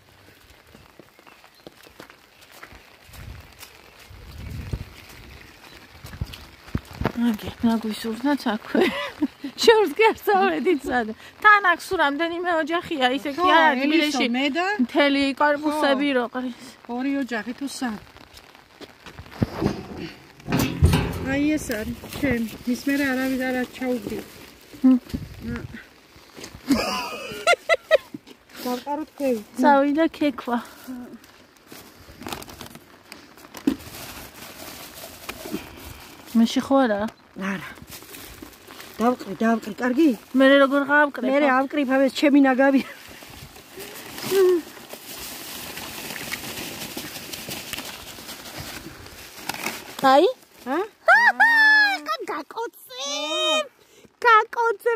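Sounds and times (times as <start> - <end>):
plastic bag rustling and crinkling: 0.0 - 53.6
bin knocks and clatter: 19.4 - 22.1
bin lid opening: 19.5 - 21.8
person talking: 21.0 - 24.3, 50.0 - 54.9.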